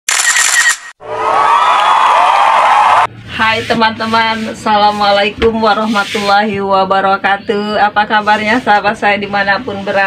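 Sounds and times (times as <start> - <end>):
children cheering: 1.0 - 3.1.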